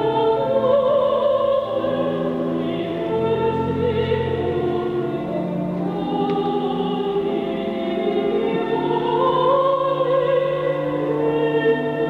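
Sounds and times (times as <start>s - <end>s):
mixed choir singing: 0.0s - 12.0s
organ accompaniment: 0.0s - 12.0s.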